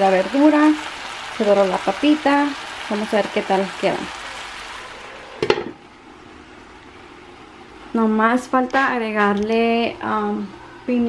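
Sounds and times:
vegetables sizzling in oil: 0.0 - 7.9.

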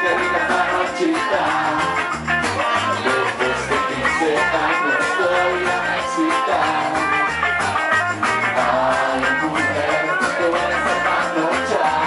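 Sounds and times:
electric guitar: 0.0 - 12.0
live reggae band playing: 0.0 - 12.0.

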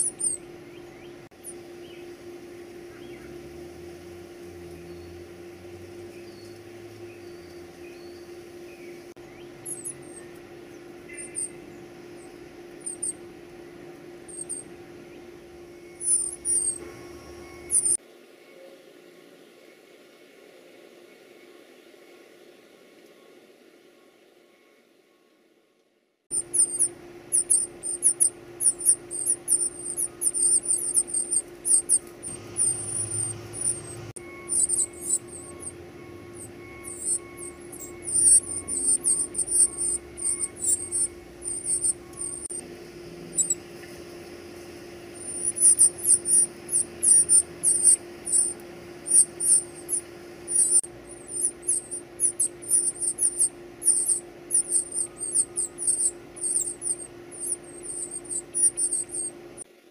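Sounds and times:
nestlings peeping: 0.0 - 2.2, 4.6 - 18.0, 26.3 - 42.6, 43.2 - 59.7
steady low hum: 0.0 - 25.5, 26.3 - 59.9.

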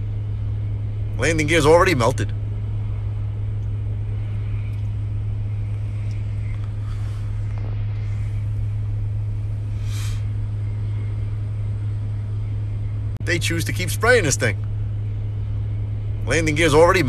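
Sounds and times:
vehicle engine idling: 0.0 - 17.0.

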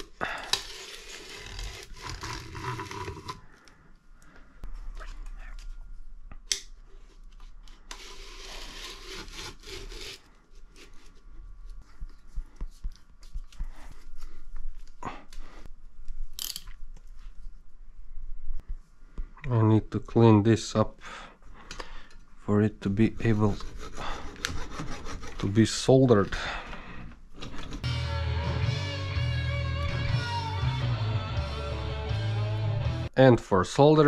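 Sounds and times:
hands rubbing and scraping windings: 22.8 - 26.4.

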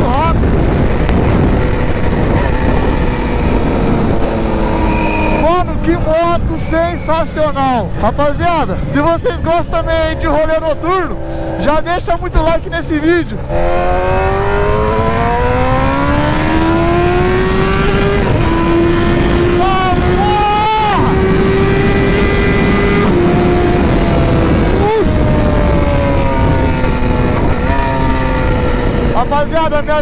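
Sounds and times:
wind noise rushing: 0.0 - 12.7, 13.3 - 30.0
motorcycle engine accelerating: 0.0 - 30.0.

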